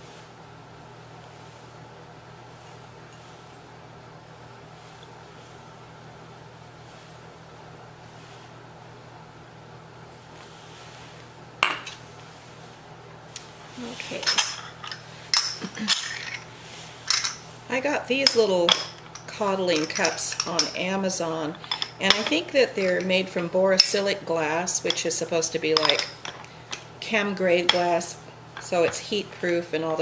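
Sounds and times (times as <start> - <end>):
low room hum: 0.0 - 30.0
glass cups clinking: 17.1 - 17.4, 18.3 - 20.8, 21.6 - 22.4, 25.8 - 26.9.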